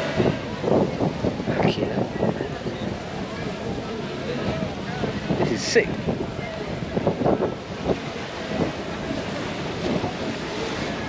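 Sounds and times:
wind buffeting microphone: 0:00.0 - 0:11.0.

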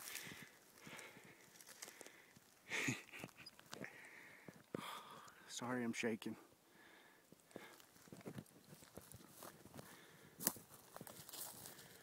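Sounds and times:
footsteps rustling through brush: 0:00.0 - 0:03.9, 0:07.4 - 0:12.0.

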